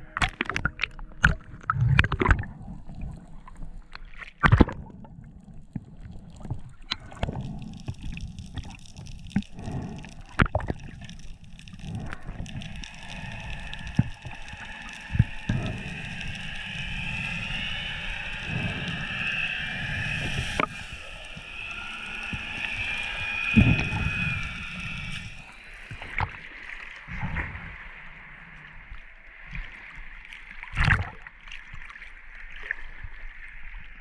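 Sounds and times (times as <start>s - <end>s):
underwater water rush: 0.0s - 34.0s.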